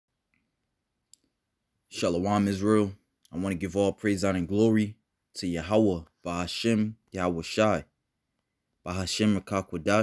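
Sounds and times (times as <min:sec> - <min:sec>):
man's voice: 0:01.9 - 0:07.9, 0:08.8 - 0:10.0.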